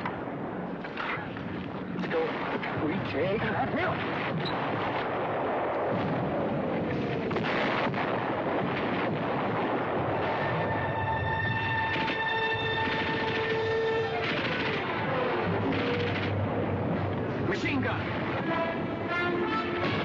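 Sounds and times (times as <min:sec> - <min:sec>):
gunfire and shell blasts: 0:06.9 - 0:10.7, 0:11.6 - 0:16.4, 0:19.8 - 0:20.0.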